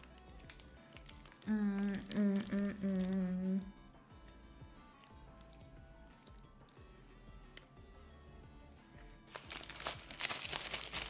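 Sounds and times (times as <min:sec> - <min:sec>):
paper wrapper crinkling: 0:00.0 - 0:03.2, 0:09.3 - 0:11.0.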